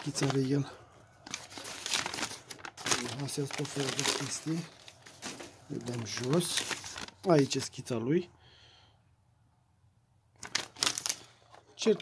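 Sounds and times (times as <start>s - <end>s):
paper crinkling and rustling: 0.0s - 7.9s, 10.4s - 12.0s.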